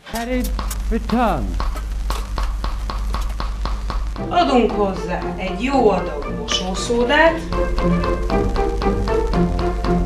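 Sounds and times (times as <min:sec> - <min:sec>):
washing machine motor hum: 0:00.0 - 0:10.0.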